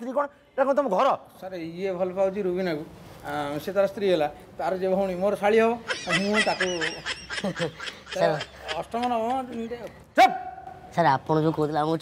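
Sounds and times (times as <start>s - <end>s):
man chuckling and babbling: 5.8s - 9.8s.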